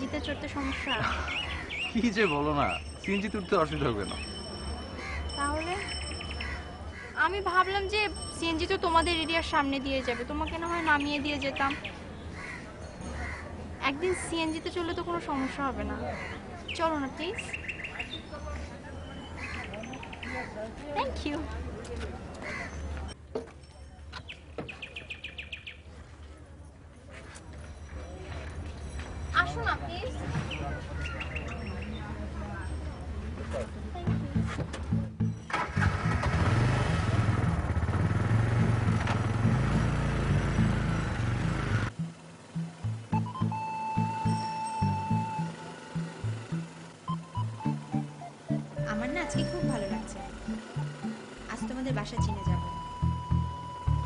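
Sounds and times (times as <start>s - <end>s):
small engine running: 35.5s - 43.0s, 44.3s - 53.5s.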